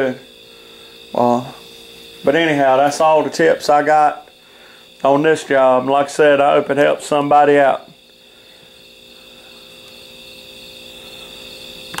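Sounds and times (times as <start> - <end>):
high-pitched whine: 0.0 - 12.0.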